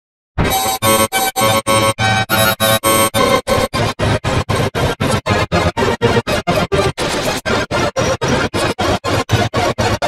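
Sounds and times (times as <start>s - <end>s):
clashing synthesizer note clusters: 0.4s - 10.0s.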